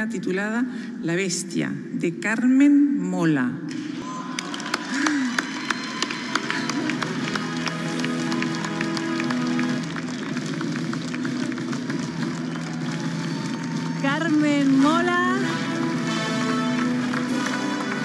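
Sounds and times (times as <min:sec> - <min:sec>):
audience applauding: 0:03.8 - 0:18.0
music of sustained notes: 0:06.6 - 0:13.1, 0:14.5 - 0:18.0.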